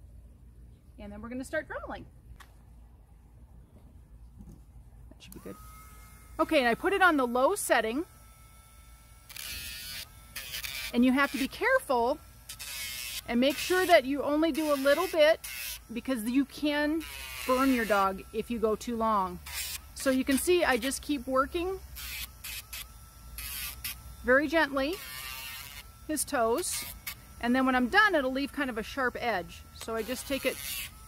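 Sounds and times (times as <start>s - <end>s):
rotary tool grinding toenail: 5.4s - 31.0s
rotary tool whining: 5.4s - 31.0s
gritty grinding on toenail: 21.9s - 27.9s, 29.8s - 31.0s.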